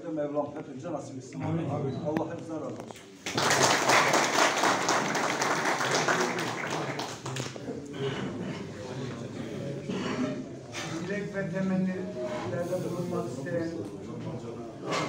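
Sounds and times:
audience applauding: 3.2 - 7.7
low voices: 5.7 - 15.0.

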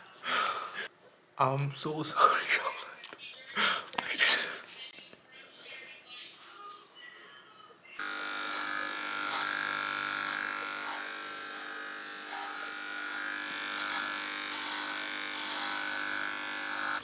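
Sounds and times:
electric clippers buzzing: 8.0 - 17.0.

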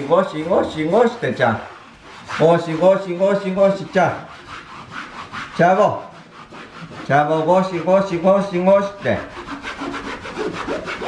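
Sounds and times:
cleaning pad scrubbing wall: 0.0 - 11.0.

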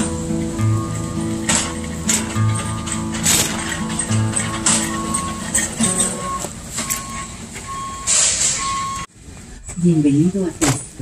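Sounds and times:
lift truck warning beeps: 2.4 - 9.1.

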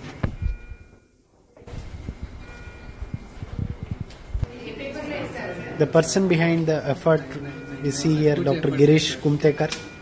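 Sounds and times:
faint steady machine tones: 0.0 - 10.0.

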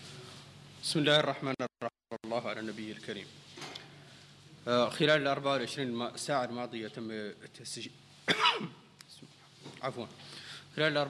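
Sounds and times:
man coughing: 8.3 - 8.8.

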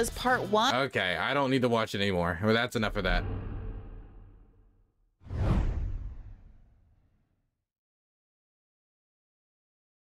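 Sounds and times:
whoosh transition effect: 3.0 - 7.1.

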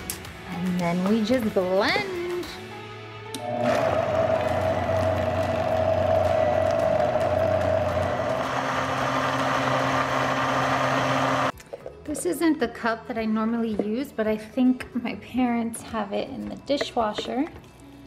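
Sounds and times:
blender running: 3.4 - 11.5.

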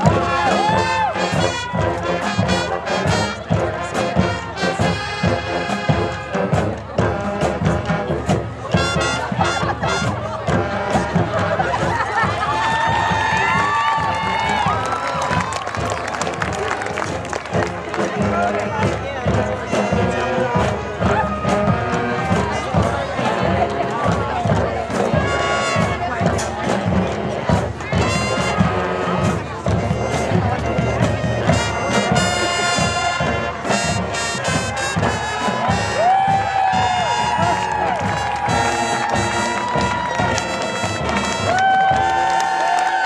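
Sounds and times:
brass instruments playing: 0.0 - 43.0
rapid drumline strokes: 0.0 - 43.0.

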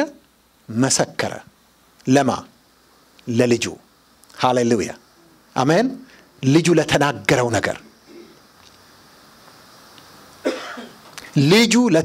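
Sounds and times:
faint room hiss: 0.0 - 12.0
man coughing into microphone: 8.0 - 8.4, 10.4 - 11.1.

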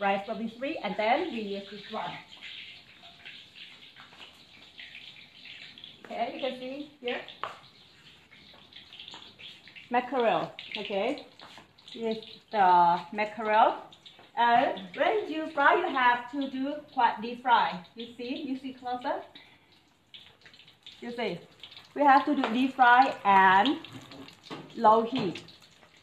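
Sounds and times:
fish sizzling in oil: 0.0 - 26.0.

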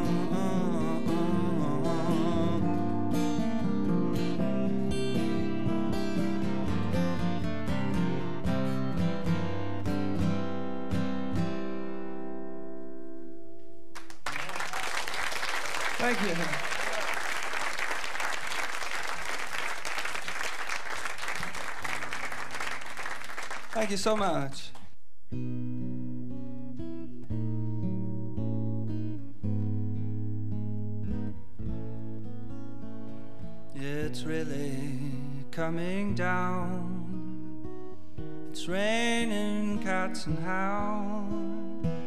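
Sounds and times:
guitar chords ringing: 0.0 - 13.9
audience applause: 14.0 - 24.4.

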